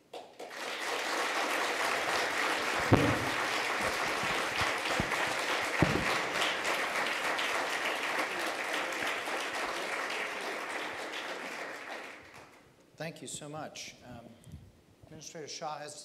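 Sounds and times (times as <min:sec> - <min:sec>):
audience applauding: 0:00.0 - 0:12.6
sharp knock: 0:02.9 - 0:06.5.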